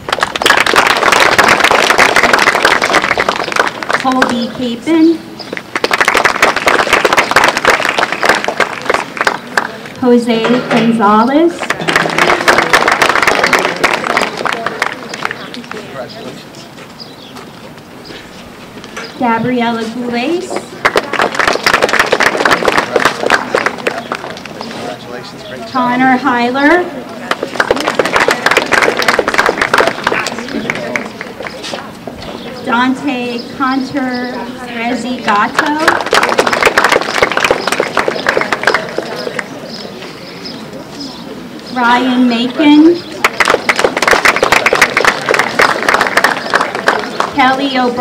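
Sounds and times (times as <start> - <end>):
audience applauding: 0.0 - 4.3, 5.6 - 10.0, 11.6 - 16.1, 20.7 - 24.7, 27.2 - 31.6, 35.6 - 39.6, 43.2 - 47.4.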